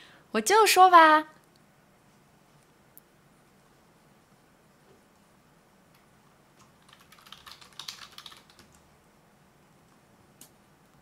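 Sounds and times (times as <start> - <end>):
typing on computer keyboard: 6.6 - 8.8.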